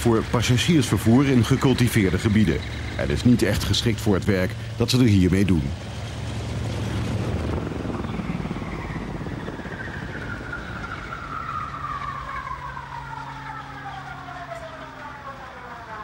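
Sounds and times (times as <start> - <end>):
propeller engines winding down: 0.0 - 16.0.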